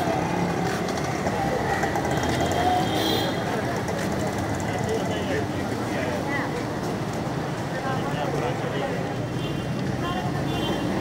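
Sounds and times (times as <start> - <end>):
faint indistinct voices: 0.0 - 11.0
traffic noise: 0.0 - 11.0.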